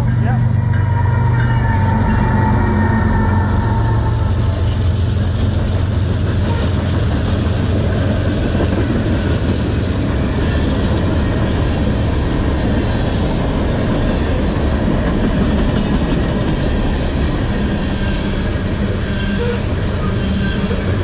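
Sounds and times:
locomotive engine drone: 0.0s - 21.0s
train wheels rumbling and clicking: 0.0s - 21.0s.

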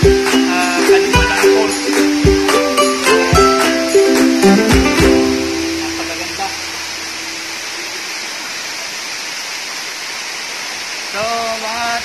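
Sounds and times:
held note of background music: 0.0s - 7.4s
waterfall rushing: 0.0s - 12.0s.

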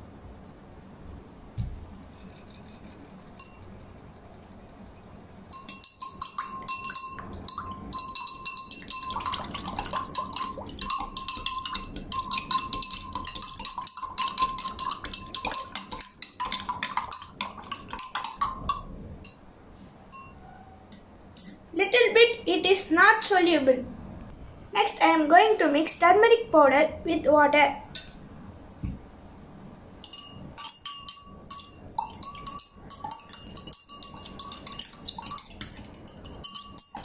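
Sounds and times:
spoon clinking against glass: 2.1s - 3.7s, 5.5s - 19.4s, 20.1s - 21.7s, 30.0s - 37.0s
glass ringing: 3.4s - 3.7s, 5.5s - 9.4s, 20.1s - 21.7s, 30.0s - 37.0s.

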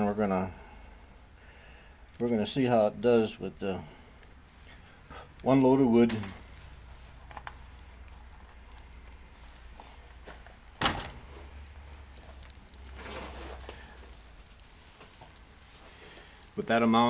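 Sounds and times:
faint crackling of burning twigs: 0.0s - 17.0s.

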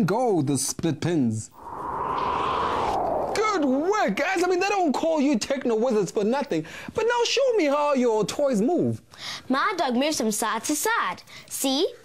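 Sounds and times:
transition whoosh: 1.5s - 4.2s.

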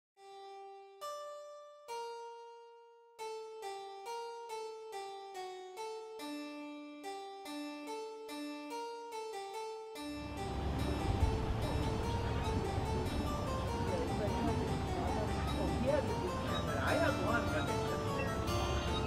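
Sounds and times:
solo harpsichord music: 0.2s - 19.0s.

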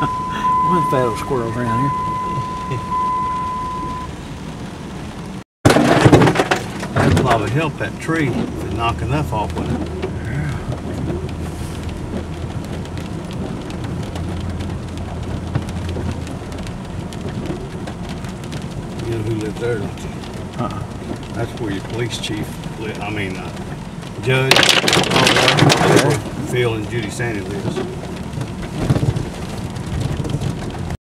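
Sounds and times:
high beep: 0.0s - 4.1s
car engine and road noise: 0.0s - 31.0s.

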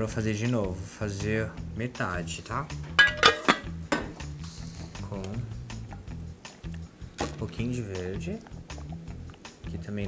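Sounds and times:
background music: 0.0s - 10.0s
saucepan lid clanking: 3.0s - 4.1s.

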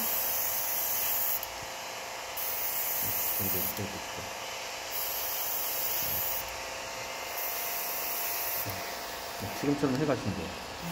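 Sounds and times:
airbrush hissing: 0.0s - 1.5s, 2.4s - 3.8s, 4.9s - 9.9s.

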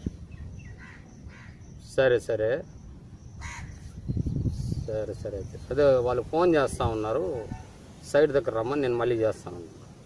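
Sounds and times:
crow cawing: 0.7s - 1.6s, 3.4s - 3.8s.

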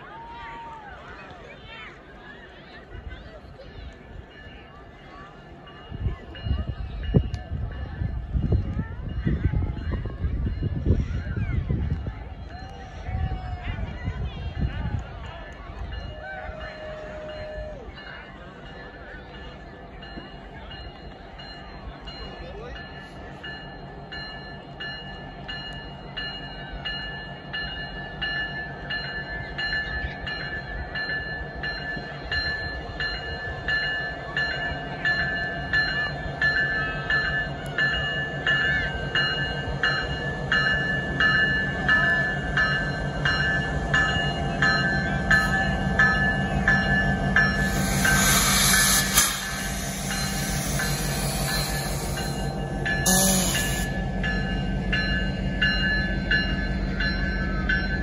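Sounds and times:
diesel locomotive rumble: 0.0s - 58.0s.

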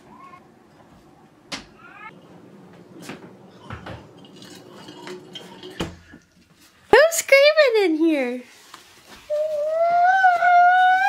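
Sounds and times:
glass tumbler clinking: 3.6s - 6.4s.

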